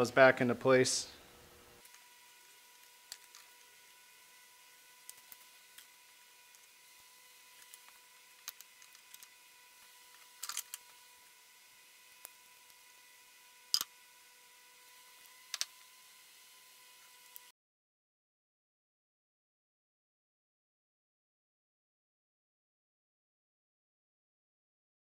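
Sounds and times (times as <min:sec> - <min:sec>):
small metal parts clicking: 0:10.1 - 0:10.8.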